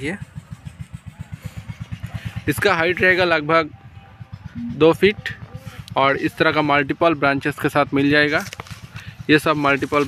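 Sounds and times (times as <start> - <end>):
small engine puttering: 0.0 - 10.0.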